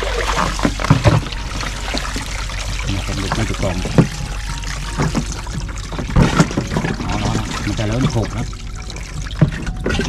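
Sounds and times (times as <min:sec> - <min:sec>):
water trickling: 0:00.0 - 0:10.0.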